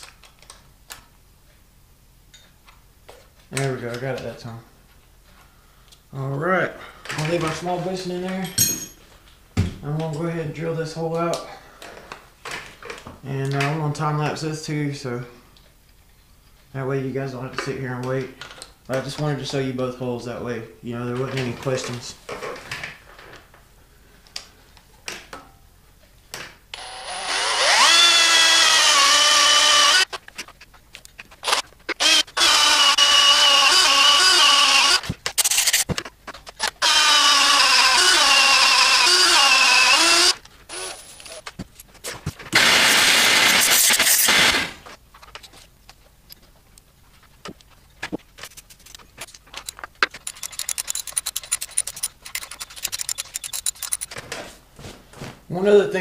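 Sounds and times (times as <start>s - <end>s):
cordless drill drilling metal: 26.8s - 30.1s, 31.4s - 35.9s, 36.6s - 41.4s, 42.6s - 44.8s, 50.2s - 54.2s
tool handling clicks: 48.4s - 54.2s.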